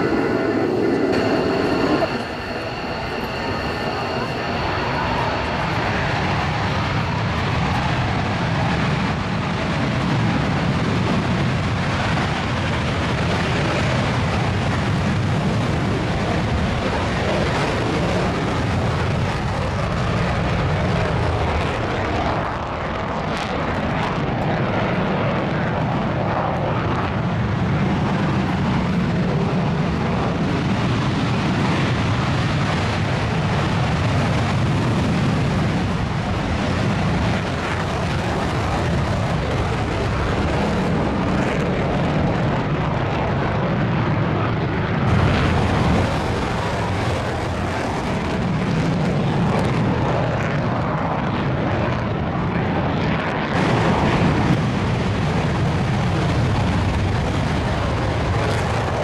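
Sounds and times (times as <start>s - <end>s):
jet engine rumble: 0.0s - 59.0s.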